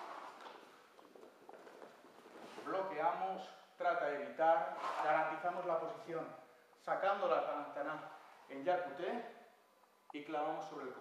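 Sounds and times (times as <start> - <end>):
soft footsteps: 0.0 - 3.1.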